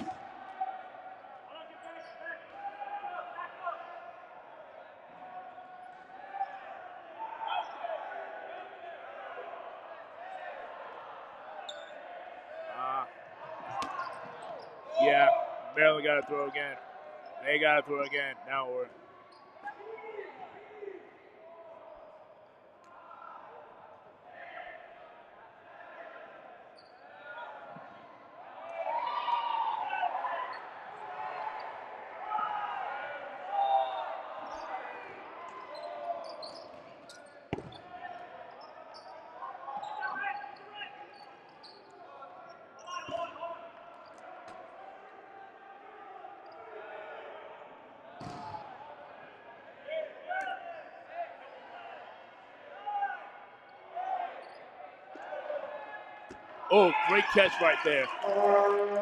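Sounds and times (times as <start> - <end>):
people calling out: 56.7 - 59.0.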